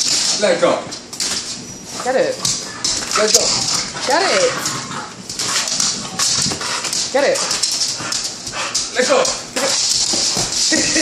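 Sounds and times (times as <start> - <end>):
dog growling: 2.0 - 9.0.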